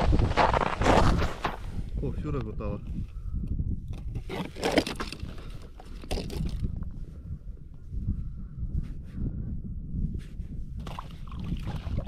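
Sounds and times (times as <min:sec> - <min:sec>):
crunching and rustling: 0:00.0 - 0:01.8
wind buffeting microphone: 0:00.0 - 0:12.0.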